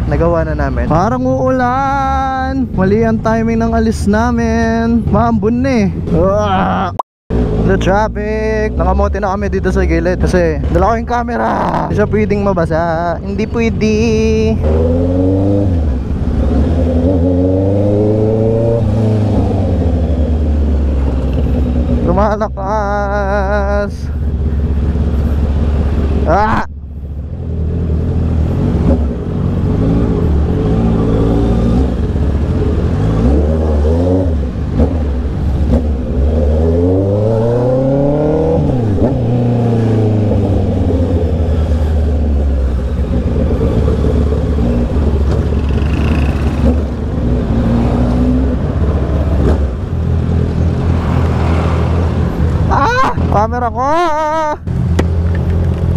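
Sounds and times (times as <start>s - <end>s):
motorcycle engine revving: 6.2s - 26.6s, 27.3s - 53.6s.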